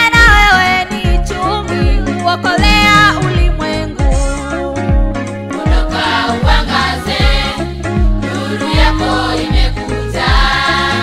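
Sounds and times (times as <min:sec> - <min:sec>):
kick drum beat: 0:02.6 - 0:05.1
choir singing: 0:05.6 - 0:07.7, 0:08.3 - 0:11.0.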